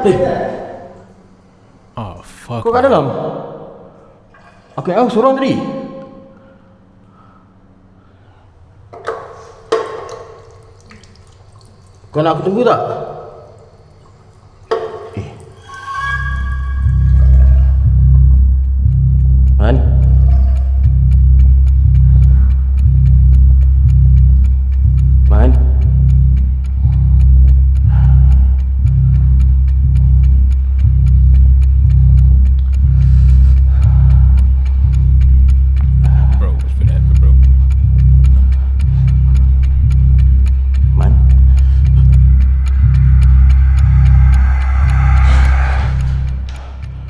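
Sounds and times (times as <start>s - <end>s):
faint steady ticking: 13.3s - 47.0s
deep pulsing drone: 14.7s - 47.0s.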